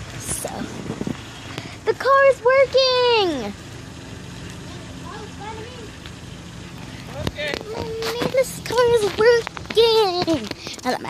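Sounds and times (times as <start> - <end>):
car engine idling: 0.0 - 11.0
voices: 0.0 - 11.0.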